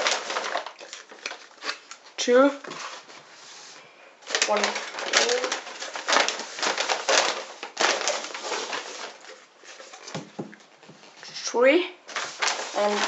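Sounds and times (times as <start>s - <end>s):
padded envelope crinkling: 0.0s - 3.3s, 4.2s - 11.3s, 12.1s - 13.0s.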